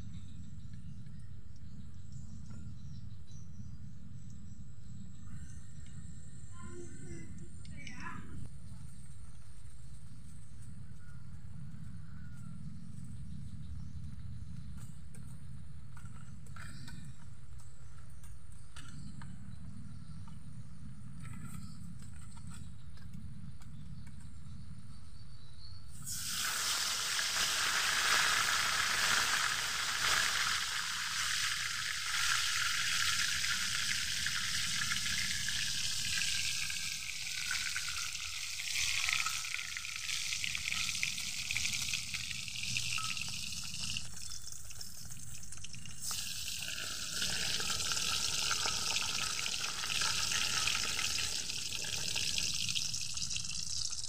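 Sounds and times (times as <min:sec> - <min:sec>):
fish sizzling in hot oil: 0:26.0 - 0:54.0.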